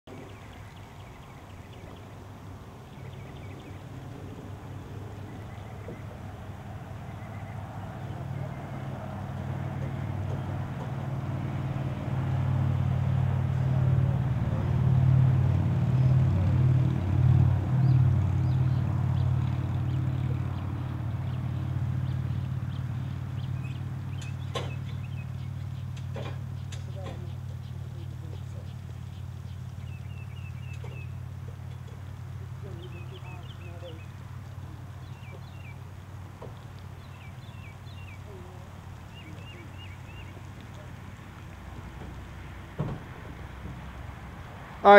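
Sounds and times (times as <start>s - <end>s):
low engine-like drone: 0.1s - 44.9s.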